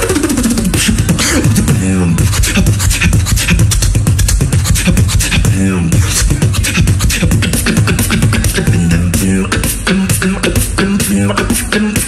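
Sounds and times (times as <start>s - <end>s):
falling vocal pitch sweep: 0.0s - 12.0s
person beatboxing through microphone: 0.0s - 12.0s.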